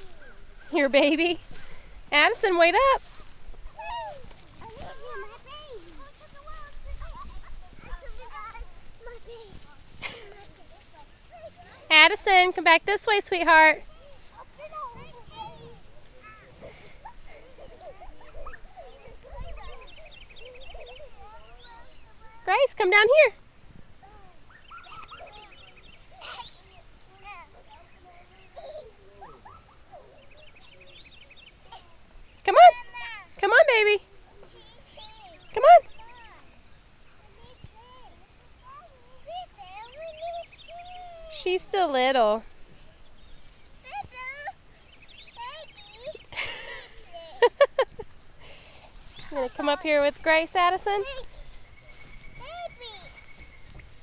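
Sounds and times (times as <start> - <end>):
children calling and babbling: 0.0 - 54.0.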